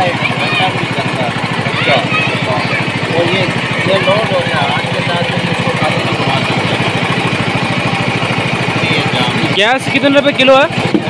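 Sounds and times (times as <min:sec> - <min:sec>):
small generator engine running: 0:00.0 - 0:11.0.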